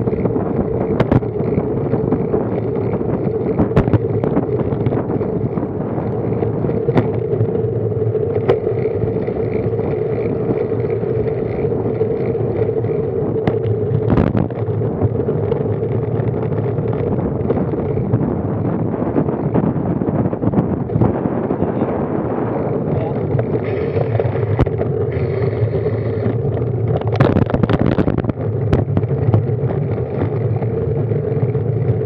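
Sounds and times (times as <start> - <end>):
constant hum: 0.0 - 32.0
wind and road rush: 0.0 - 32.0.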